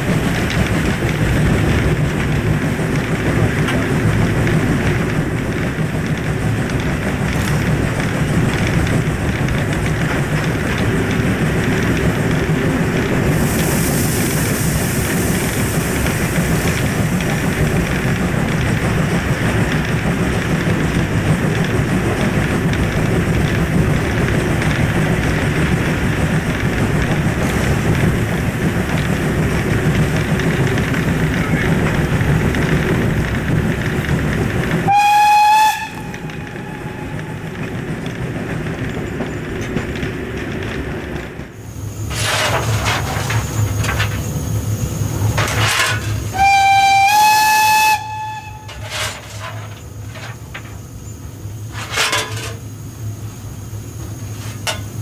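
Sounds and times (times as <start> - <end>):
high steam hiss: 0.0 - 55.0
steam locomotive rumble: 0.0 - 55.0
steam whistle blast: 34.9 - 37.2, 46.3 - 49.2.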